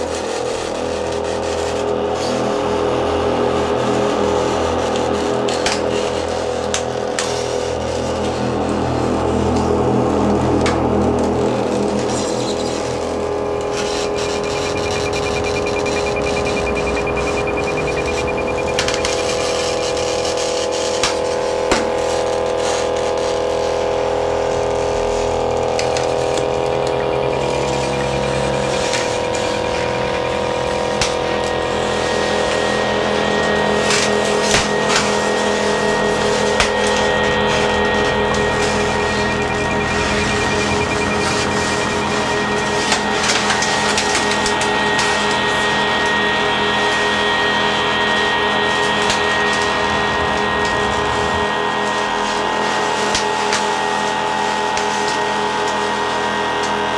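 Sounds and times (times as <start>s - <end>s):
sustained drone tones: 0.0s - 56.9s
low rumble: 10.6s - 34.4s, 48.7s - 52.6s
thin high tone: 12.1s - 21.4s, 24.1s - 56.9s.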